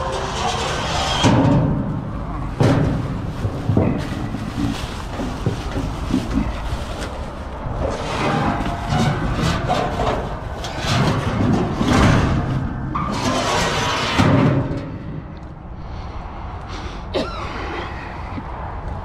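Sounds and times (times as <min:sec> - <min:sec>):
steady low rumble: 0:00.8 - 0:19.0
plastic bag rustling: 0:02.4 - 0:11.8.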